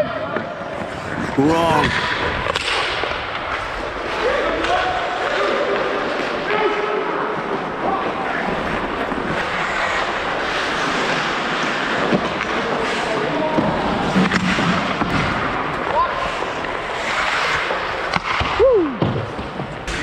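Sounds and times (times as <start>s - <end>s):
skates scraping ice: 0.0s - 20.0s
sticks and puck clacking: 0.2s - 20.0s.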